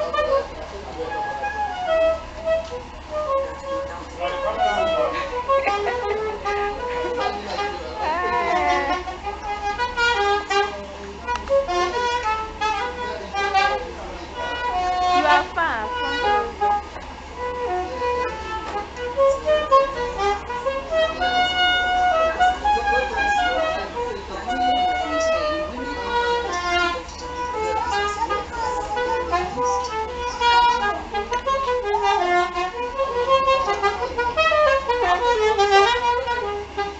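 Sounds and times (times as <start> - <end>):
saxophone melody: 0.0 - 36.9.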